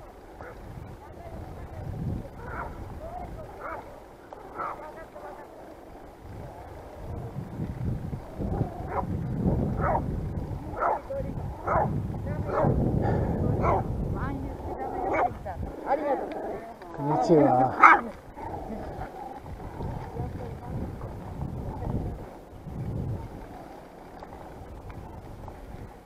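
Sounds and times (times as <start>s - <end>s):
wind rumble on microphone: 0.0s - 26.0s
dog barking: 0.4s - 0.6s, 2.4s - 2.8s, 3.6s - 3.8s, 4.5s - 4.9s, 8.9s - 9.1s, 9.8s - 10.0s, 10.8s - 11.0s, 11.6s - 11.9s, 12.5s - 12.8s, 13.6s - 13.9s, 15.1s - 15.4s, 17.7s - 18.1s.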